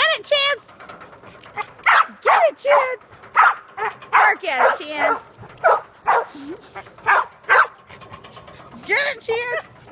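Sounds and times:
small dog barking: 0:03.4 - 0:06.3, 0:07.1 - 0:07.7.

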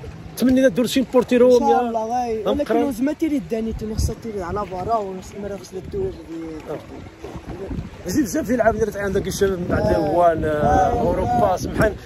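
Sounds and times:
wind buffeting microphone: 0:00.0 - 0:12.0
men talking quietly: 0:00.3 - 0:12.0.

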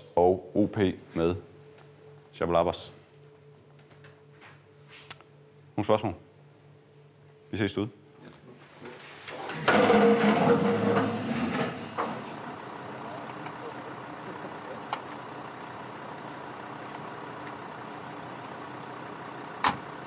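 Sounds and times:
clatter of people getting up: 0:09.2 - 0:12.4
truck engine running: 0:09.6 - 0:20.0.

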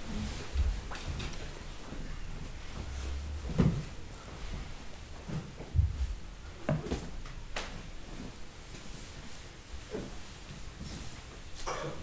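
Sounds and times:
people shifting in wooden chairs: 0:00.0 - 0:12.0.

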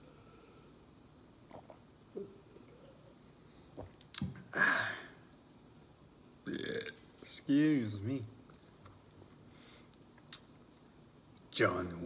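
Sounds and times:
man burping: 0:06.5 - 0:07.0.

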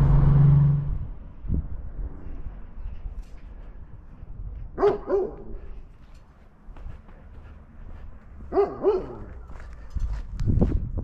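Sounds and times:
wind rumble on microphone: 0:00.0 - 0:04.8, 0:09.5 - 0:11.0
dog barking: 0:04.8 - 0:05.6, 0:08.5 - 0:09.3.

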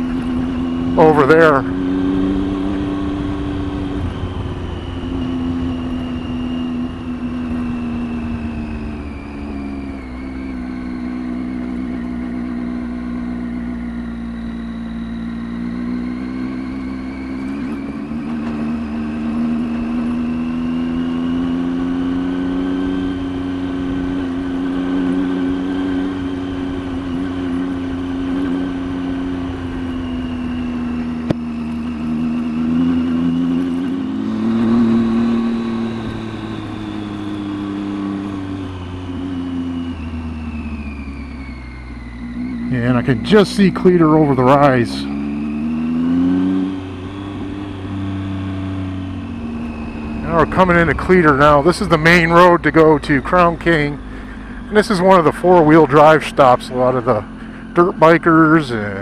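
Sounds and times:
motorcycle engine running: 0:00.0 - 0:59.0.

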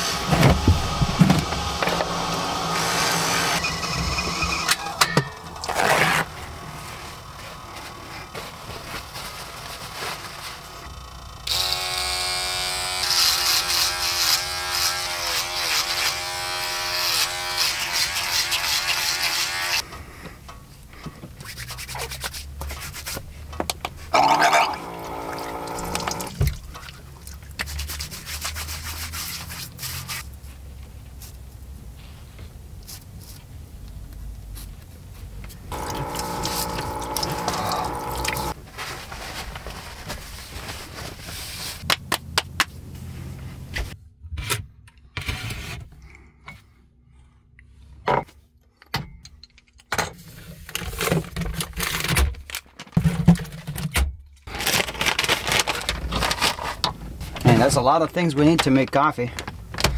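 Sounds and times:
electric hair trimmer buzzing: 0:01.6 - 0:03.6, 0:11.4 - 0:19.8, 0:24.1 - 0:26.3, 0:35.7 - 0:38.6.

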